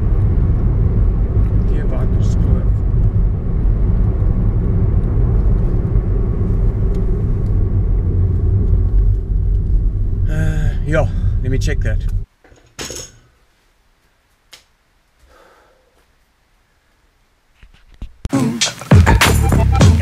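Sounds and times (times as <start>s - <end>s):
car road and engine noise: 0.0s - 12.3s.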